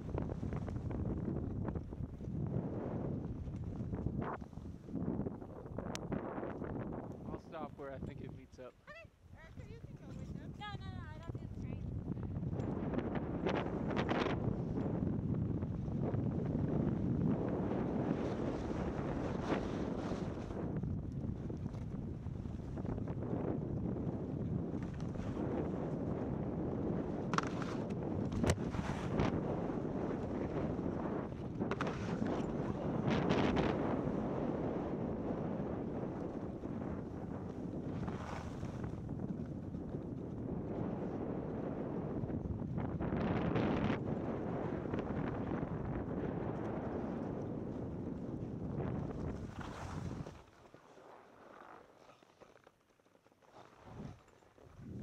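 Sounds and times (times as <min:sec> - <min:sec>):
wind on microphone: 0:00.0 - 0:50.6, 0:53.6 - 0:55.0
skis sliding on snow: 0:16.5 - 0:20.8, 0:24.6 - 0:41.9, 0:48.4 - 0:54.9.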